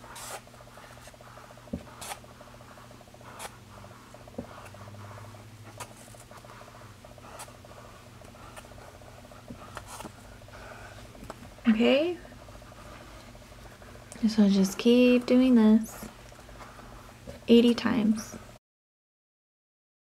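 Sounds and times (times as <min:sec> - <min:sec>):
yarn rubbing on cardboard: 0:00.0 - 0:11.2
faint steady hum: 0:00.0 - 0:18.6.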